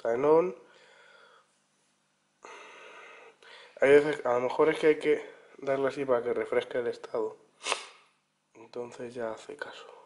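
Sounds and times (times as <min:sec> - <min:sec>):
soft nasal exhale: 0:07.6 - 0:08.1.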